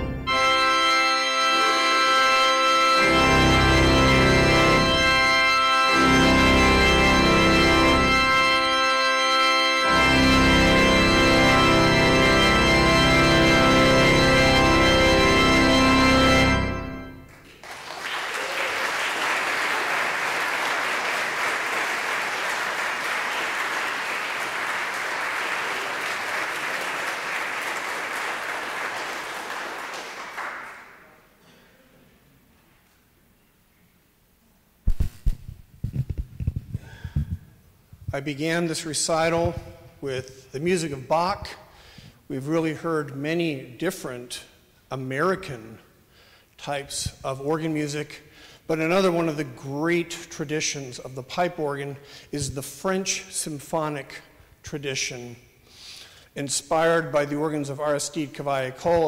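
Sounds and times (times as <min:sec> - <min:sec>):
church organ playing chords: 0:00.0 - 0:17.5, 0:19.0 - 0:31.0, 0:38.2 - 0:55.5, 0:56.4 - 0:59.0
audience applauding: 0:17.3 - 0:31.2.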